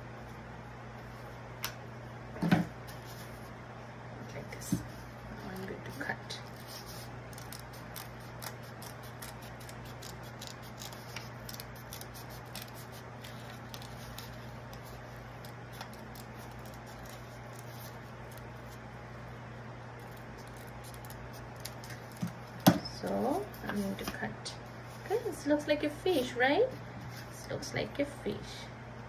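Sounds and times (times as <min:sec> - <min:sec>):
constant low hum: 0:00.0 - 0:29.0
paper crackling: 0:04.9 - 0:19.3, 0:20.0 - 0:25.4
scissors snipping paper: 0:06.4 - 0:18.8, 0:20.0 - 0:23.8.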